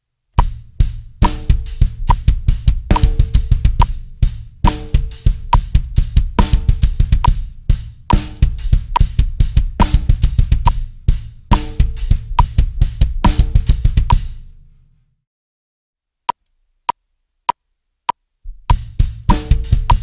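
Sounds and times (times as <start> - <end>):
drum kit with fast double bass drum: 0.4 - 14.5, 18.5 - 20.0.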